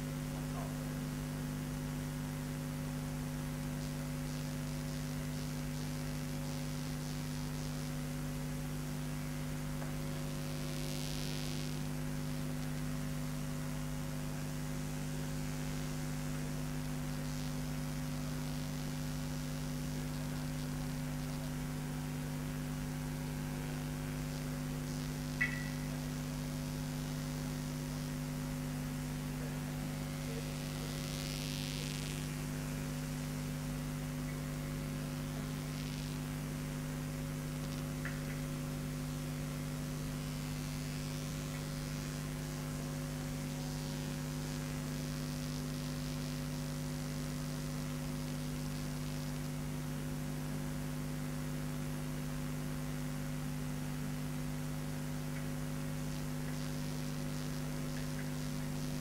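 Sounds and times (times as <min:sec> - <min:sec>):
electrical mains hum: 0:00.0 - 0:59.0
brief click: 0:25.4 - 0:25.9.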